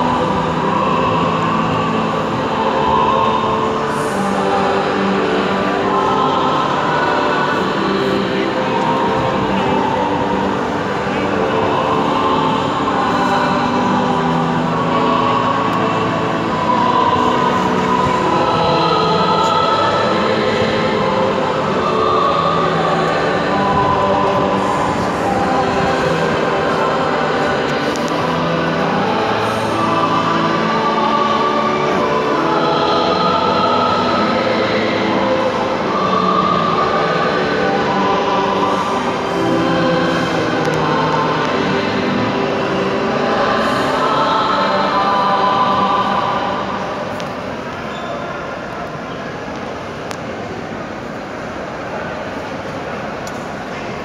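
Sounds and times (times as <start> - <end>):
choir singing in a church: 0.0 - 54.0.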